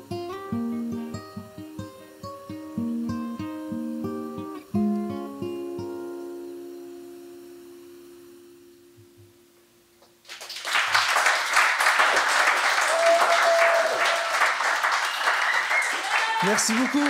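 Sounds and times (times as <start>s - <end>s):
acoustic guitar chord ringing: 0.0s - 9.9s
audience applause: 10.2s - 17.0s.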